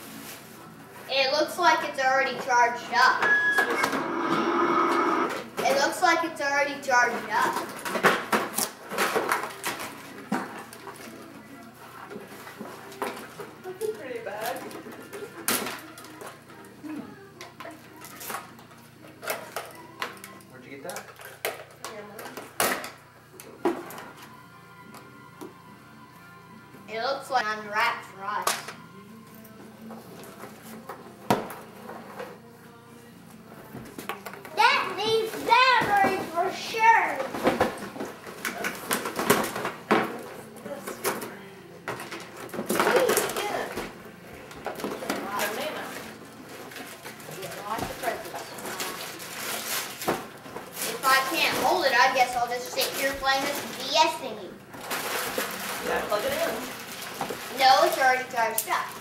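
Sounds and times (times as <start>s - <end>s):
paper and cardboard tearing: 46.6s - 54.2s.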